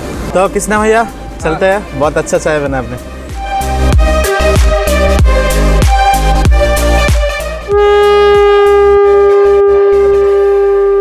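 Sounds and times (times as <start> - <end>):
conch shell horn note: 7.6 - 11.0.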